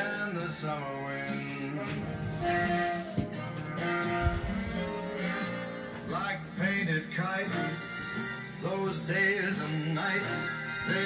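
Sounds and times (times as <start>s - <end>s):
man singing: 0.0s - 2.4s, 6.0s - 11.0s
recorded song background music: 0.0s - 11.0s.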